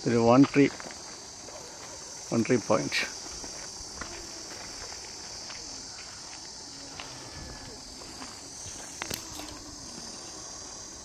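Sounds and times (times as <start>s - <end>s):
footsteps on dirt path: 0.0s - 11.0s
insects chirring: 0.0s - 11.0s.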